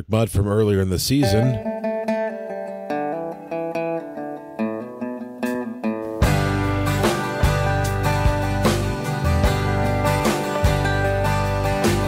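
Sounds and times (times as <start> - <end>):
solo guitar picking melody: 1.2 - 12.0.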